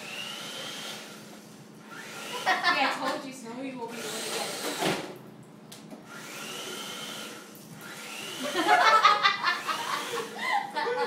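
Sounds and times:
toy car electric motor whining: 6.1s - 8.7s.

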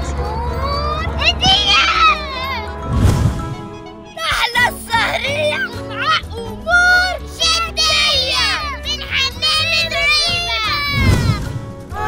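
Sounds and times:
background music: 0.0s - 12.0s
girl talking: 0.6s - 2.7s, 4.1s - 11.4s.

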